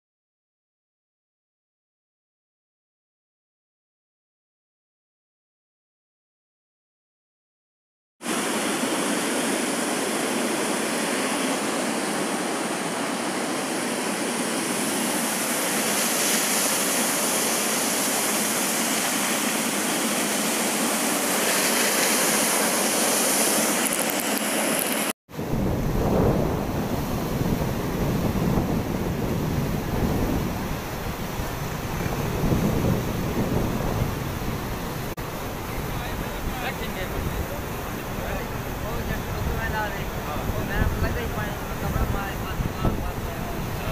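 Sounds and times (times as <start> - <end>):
floodwater running across road: 8.3 - 25.1
waterfall roaring: 8.3 - 43.9
wind buffeting microphone: 25.3 - 43.9.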